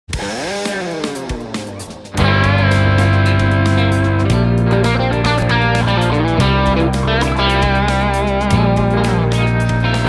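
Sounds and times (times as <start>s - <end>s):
overdriven electric guitar note: 2.2s - 10.0s.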